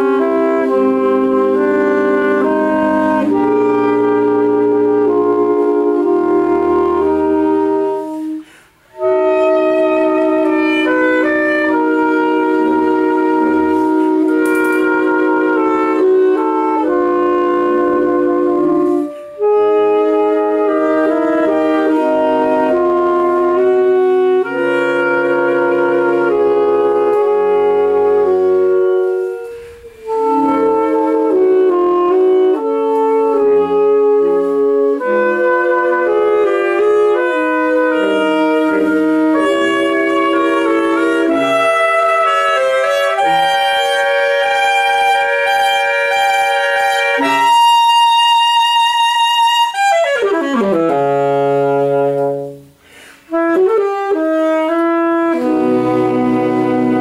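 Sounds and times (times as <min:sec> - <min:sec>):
saxophone ensemble playing chords: 0:00.0 - 0:57.0.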